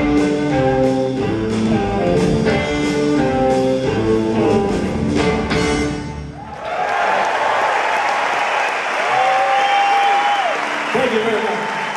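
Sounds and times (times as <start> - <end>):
audience applauding and cheering: 6.3 - 11.9.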